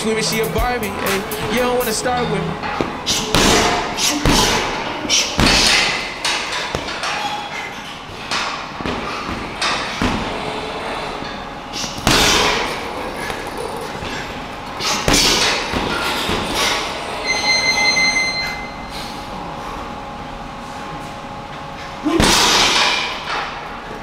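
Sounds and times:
punches thudding on heavy bag: 3.2 - 4.8, 5.4 - 7.0, 11.9 - 12.8, 14.9 - 16.8
brief high squeak: 17.2 - 18.9.

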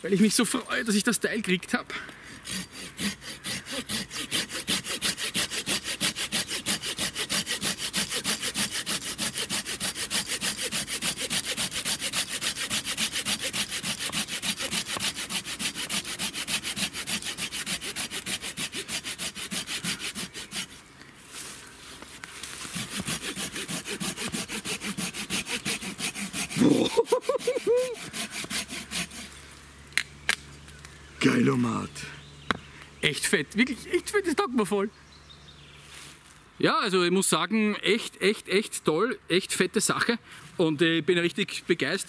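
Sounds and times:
pruning saw cutting log: 2.2 - 20.9, 21.6 - 31.8, 37.7 - 38.8.

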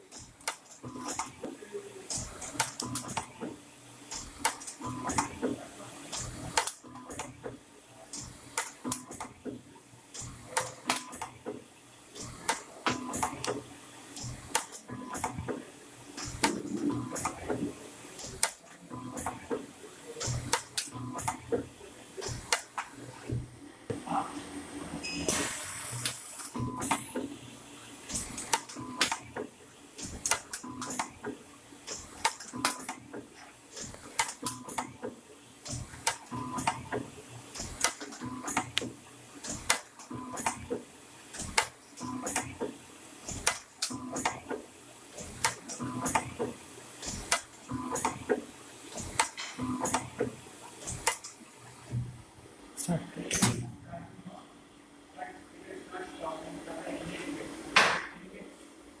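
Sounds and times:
winding machine clicking and clattering: 0.0 - 23.4, 26.0 - 27.4, 28.0 - 52.0.

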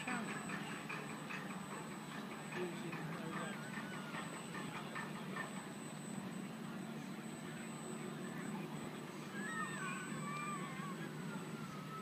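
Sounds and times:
boat motor high whine: 0.0 - 12.0
low even hum: 0.0 - 12.0.

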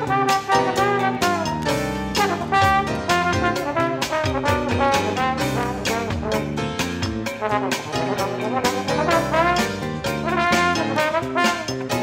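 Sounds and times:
instrumental jazz with brass: 0.0 - 12.0.

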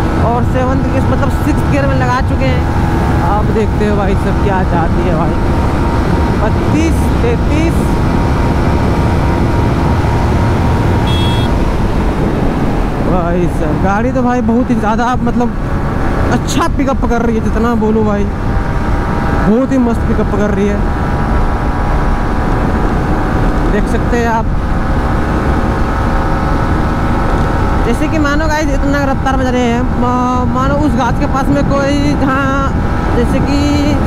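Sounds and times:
motorcycle engine at high revs: 0.0 - 13.0
wind rushing over microphone: 0.0 - 34.0
brief high tone: 11.0 - 11.5.

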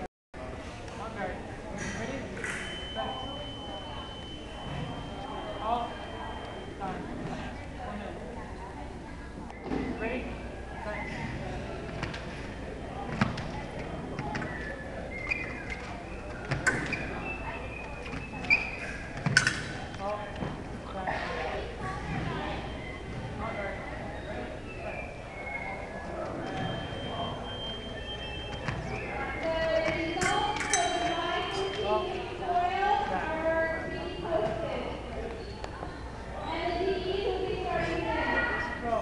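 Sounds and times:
voices murmuring in a hall: 0.4 - 39.0
shoe squeaks: 1.8 - 6.8, 13.2 - 20.4, 22.1 - 32.2, 35.2 - 36.8.

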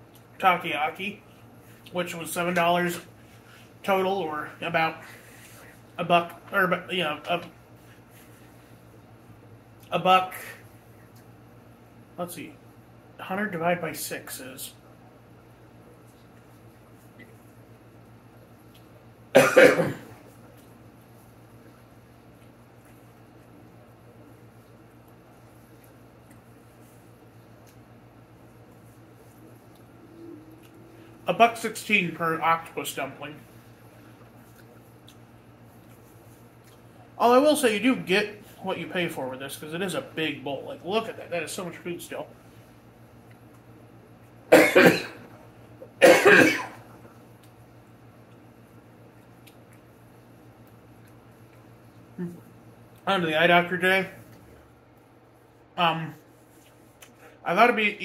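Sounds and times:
man coughing: 19.4 - 20.2, 44.5 - 45.2, 46.0 - 46.8.

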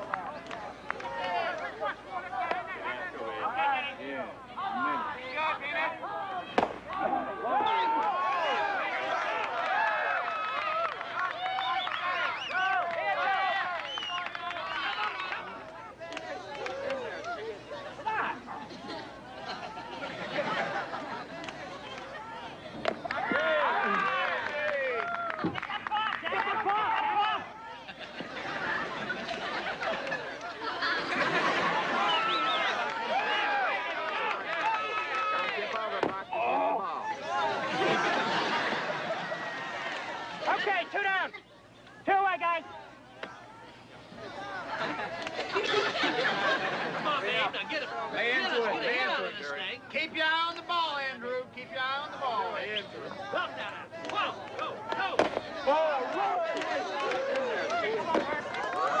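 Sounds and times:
crowd shouting and cheering: 0.0 - 59.0
people shouting: 6.0 - 13.9, 22.1 - 27.9, 31.8 - 37.8
bat cracking against ball: 6.6 - 7.0, 54.9 - 55.5.

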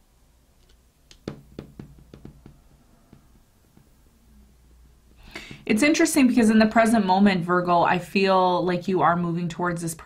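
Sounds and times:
cards tapping on marble table: 0.6 - 4.0.

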